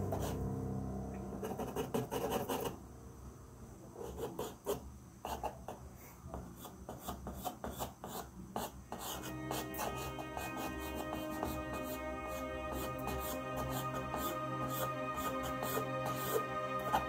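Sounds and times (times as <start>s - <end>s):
background music: 0.0s - 2.7s, 9.0s - 17.0s
pencil scratching on paper: 0.1s - 0.4s, 1.4s - 2.8s, 4.0s - 17.0s.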